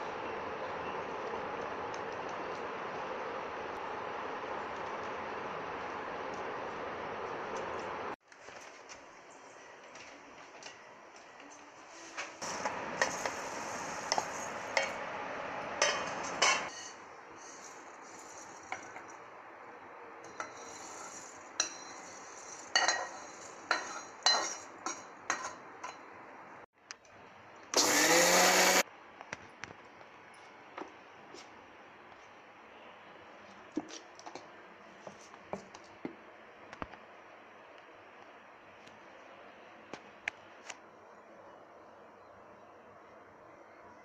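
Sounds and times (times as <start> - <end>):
steel utensils clinking and scraping: 20.3 - 26.0
mixer grinder grinding spices: 27.8 - 28.8.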